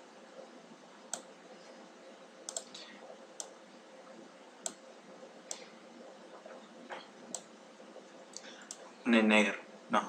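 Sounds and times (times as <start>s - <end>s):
low steady hiss: 0.0s - 10.0s
computer mouse clicking: 2.5s - 2.8s, 3.4s - 3.6s, 4.6s - 4.8s.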